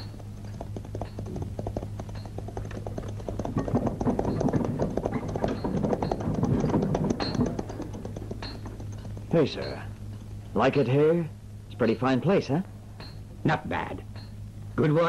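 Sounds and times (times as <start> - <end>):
clicking tapping percussion: 0.0 - 10.3
steady low hum: 0.0 - 15.0.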